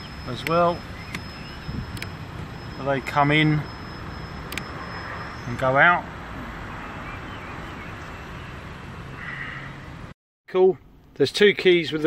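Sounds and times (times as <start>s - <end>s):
power mirror motor running: 0.0s - 5.2s
steady hum inside car: 0.0s - 5.5s.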